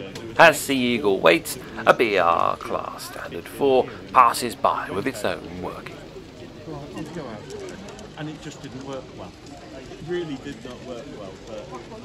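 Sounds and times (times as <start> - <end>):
narration: 0.0 - 7.1
indistinct background conversation: 0.0 - 10.2.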